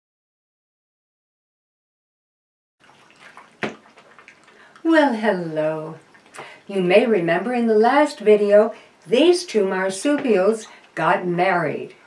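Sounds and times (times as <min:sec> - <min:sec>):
low hiss: 0:02.8 - 0:12.0
small clicks and rustles: 0:03.7 - 0:04.9
woman speaking: 0:04.8 - 0:12.0.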